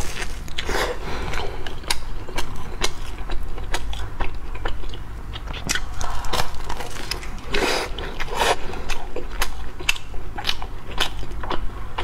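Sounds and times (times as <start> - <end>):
crunchy bread chewing: 0.0 - 12.0.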